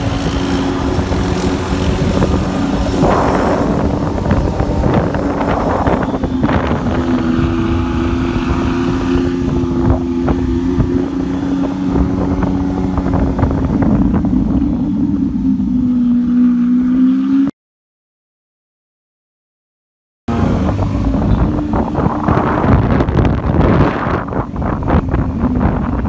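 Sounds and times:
car engine cruising at low revs: 0.0s - 17.5s, 20.3s - 26.0s
road and wind noise: 0.0s - 17.5s, 20.3s - 26.0s.

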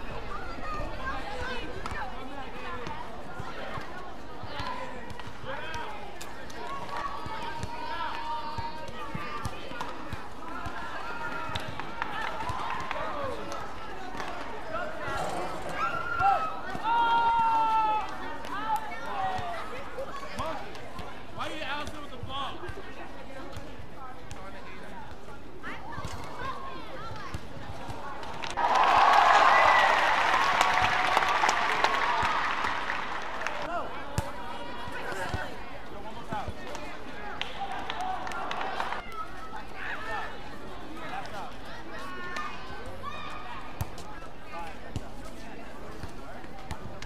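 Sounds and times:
arena background noise: 0.0s - 47.0s.

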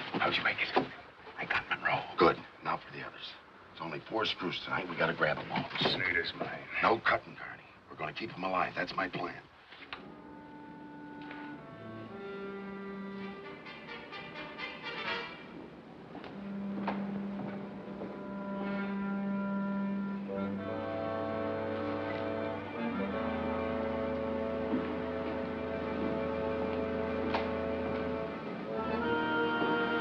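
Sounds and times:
low orchestral notes: 10.0s - 30.0s
tense orchestral held notes: 10.2s - 30.0s.

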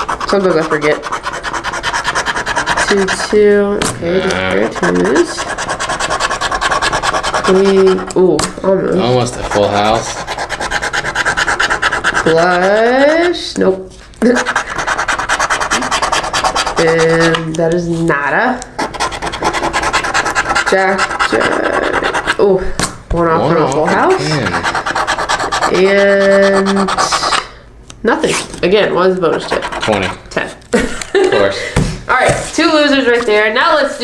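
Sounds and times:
scratch-off ticket being scraped: 0.0s - 22.5s, 23.2s - 27.6s, 28.2s - 30.6s.

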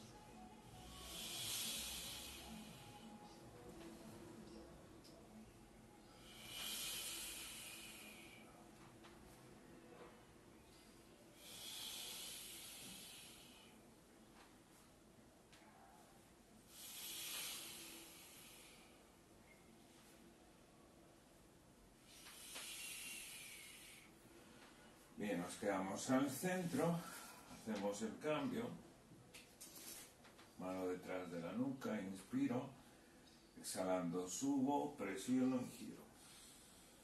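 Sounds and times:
person hissing breath out: 0.8s - 3.1s, 6.1s - 8.6s, 11.4s - 13.8s, 16.7s - 19.0s, 22.1s - 24.1s.

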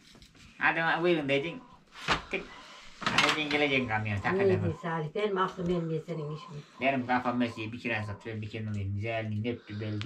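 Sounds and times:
person talking: 3.1s - 10.0s.

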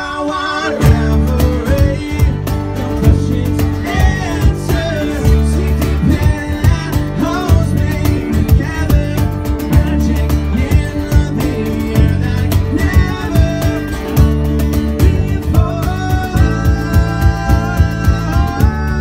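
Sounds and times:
keyboard: 0.0s - 19.0s
man singing: 0.0s - 19.0s
strummed acoustic guitar: 0.1s - 19.0s
cajon beat: 0.6s - 19.0s.

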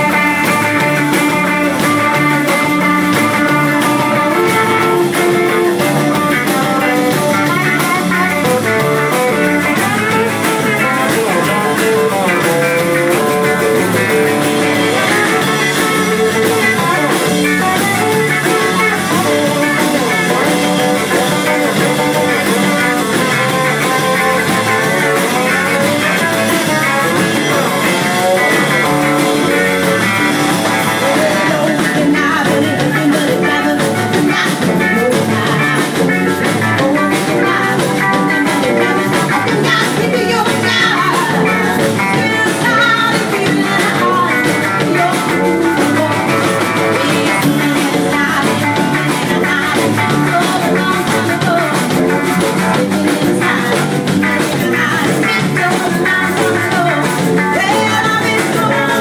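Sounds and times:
electric guitar: 0.0s - 59.0s
rock band playing: 0.0s - 59.0s.

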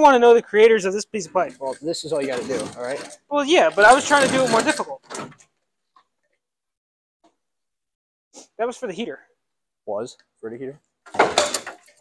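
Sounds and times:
heater hose scraping and rattling: 1.3s - 5.4s.

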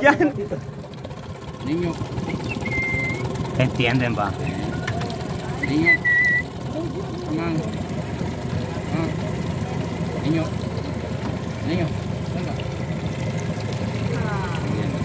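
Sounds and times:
motorboat engine idling: 0.0s - 15.0s
voices: 0.0s - 15.0s.

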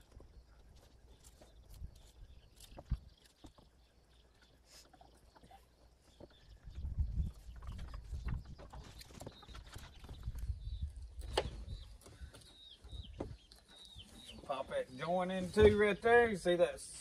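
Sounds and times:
faint bird chirps: 0.0s - 16.5s.

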